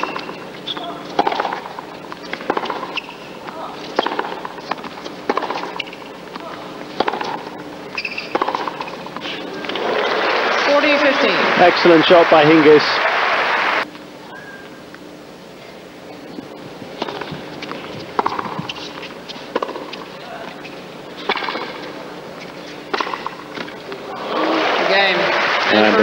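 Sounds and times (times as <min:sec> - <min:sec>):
racket striking tennis ball: 0:00.0 - 0:10.2, 0:17.0 - 0:21.8, 0:22.8 - 0:23.8
crowd applause: 0:09.5 - 0:13.8, 0:24.0 - 0:26.0.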